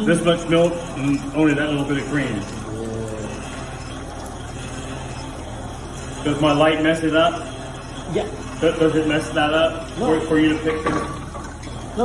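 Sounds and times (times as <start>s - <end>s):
cream separator humming: 0.0s - 12.0s
milk streaming: 0.0s - 12.0s.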